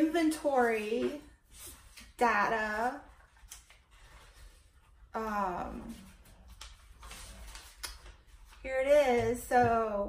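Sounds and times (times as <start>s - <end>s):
paper pages flicking and rustling: 6.2s - 8.7s.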